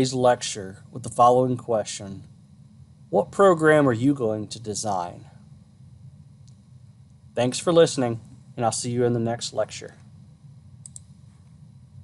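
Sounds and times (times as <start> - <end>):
faint low hum: 0.0 - 12.0
light clicks: 10.8 - 11.1.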